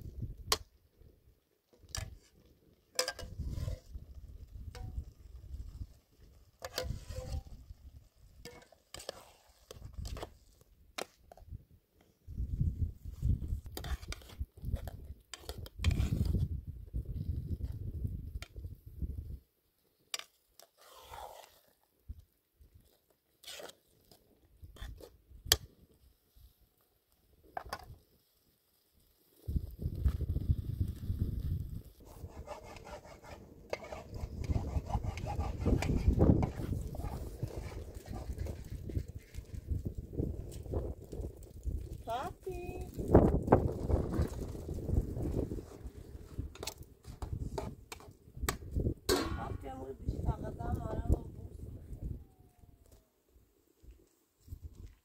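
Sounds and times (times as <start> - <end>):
metal spoon scraping a pot: 6.6 - 7.5, 8.5 - 10.2, 32.0 - 38.6.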